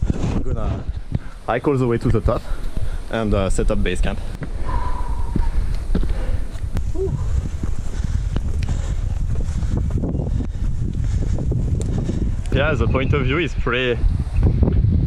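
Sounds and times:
footsteps on rocky trail: 0:00.0 - 0:12.9
low microphone rumble: 0:00.0 - 0:15.0.

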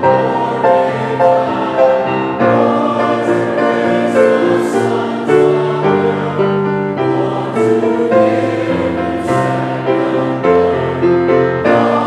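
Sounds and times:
congregation singing a hymn: 0:00.0 - 0:12.0
piano accompaniment: 0:00.0 - 0:12.0.

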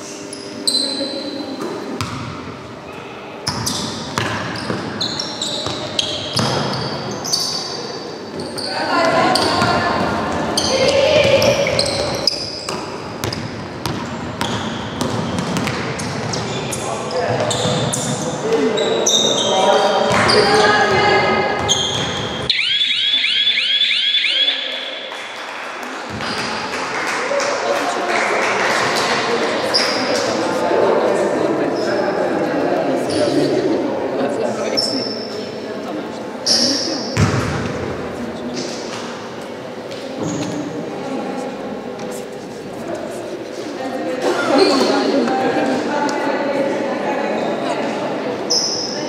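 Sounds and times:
sneakers squeaking: 0:00.0 - 0:22.5, 0:26.1 - 0:26.7, 0:28.8 - 0:30.6, 0:33.0 - 0:33.8, 0:34.6 - 0:35.6, 0:36.4 - 0:40.8, 0:44.2 - 0:45.6, 0:48.4 - 0:49.0
basketball bouncing on wooden floor: 0:11.2 - 0:16.5.

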